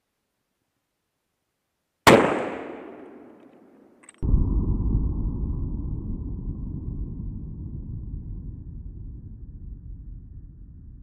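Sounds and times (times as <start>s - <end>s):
rifle shot: 2.0s - 4.2s.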